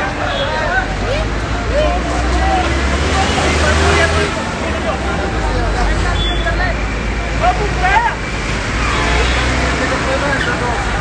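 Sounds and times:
crowd babble: 0:00.0 - 0:11.0
low traffic rumble: 0:00.0 - 0:11.0.

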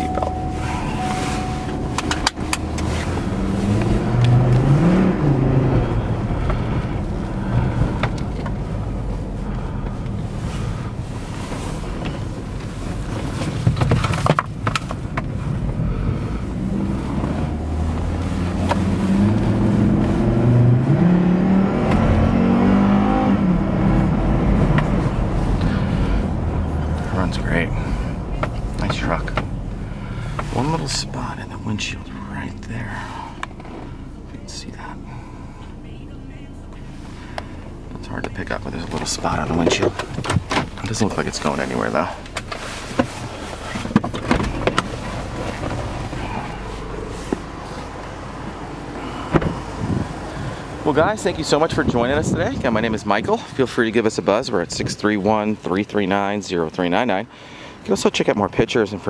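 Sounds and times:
car engine accelerating: 0:00.0 - 0:59.0
road and tyre noise: 0:00.0 - 0:59.0.

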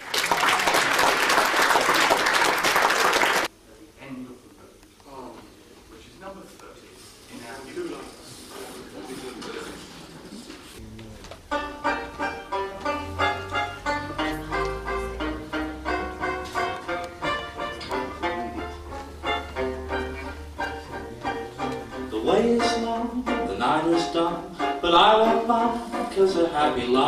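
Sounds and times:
low bass notes: 0:10.8 - 0:26.3
banjo strumming: 0:11.4 - 0:27.0.

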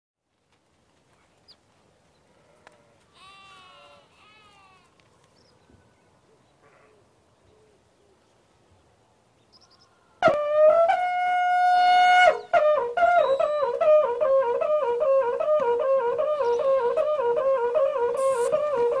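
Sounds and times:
sheep bleating: 0:02.4 - 0:04.9.

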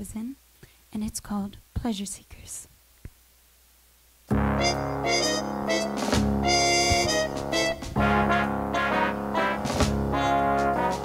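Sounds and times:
woman speaking into a microphone: 0:00.0 - 0:02.7.

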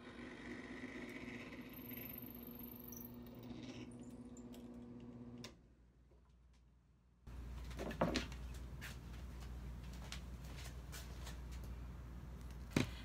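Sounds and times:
drill press motor humming: 0:00.0 - 0:05.6.

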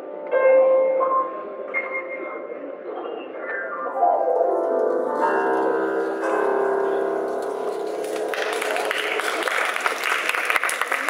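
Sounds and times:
piano chords ringing: 0:00.0 - 0:10.2.

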